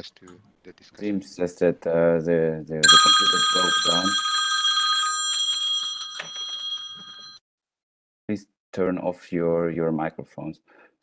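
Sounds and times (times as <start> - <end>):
high-pitched ringing tone: 2.8 - 7.4.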